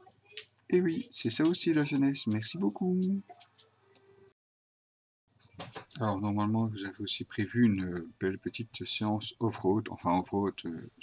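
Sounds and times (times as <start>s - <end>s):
speech: 0.7s - 3.3s, 5.9s - 11.0s.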